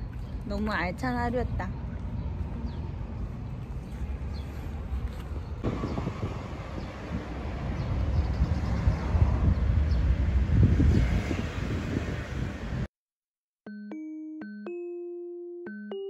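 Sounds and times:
wind buffeting microphone: 0:00.1 - 0:12.9.

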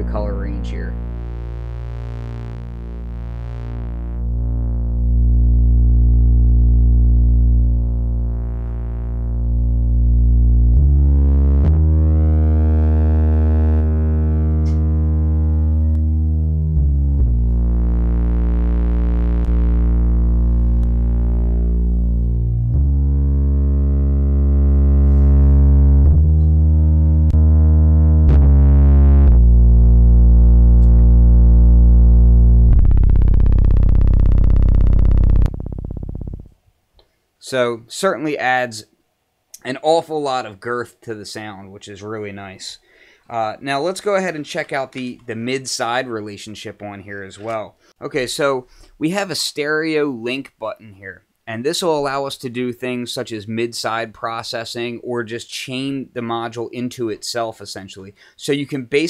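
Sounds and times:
distorted synth bass notes: 0:00.0 - 0:36.7.

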